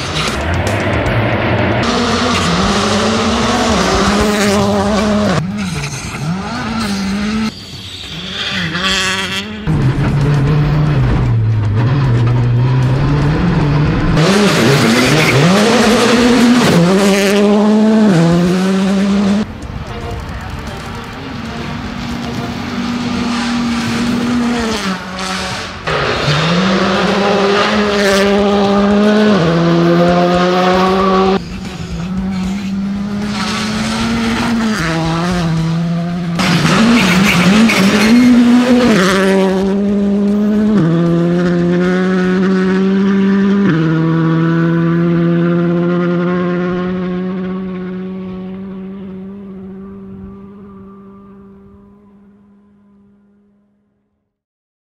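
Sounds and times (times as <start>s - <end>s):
rally car engine at full throttle: 0.0s - 54.1s.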